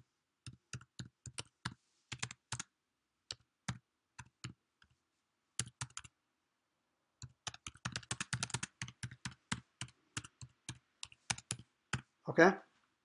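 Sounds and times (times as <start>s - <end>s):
typing on keyboard: 0.4s - 2.7s, 3.3s - 4.9s, 5.6s - 6.1s, 7.2s - 12.1s.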